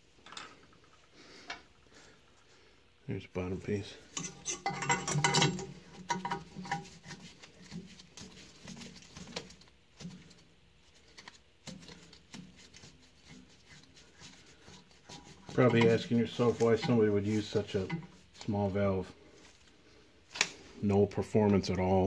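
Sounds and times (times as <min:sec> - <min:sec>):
steel tools clinking on metal: 0:04.2 - 0:06.8, 0:15.6 - 0:18.1.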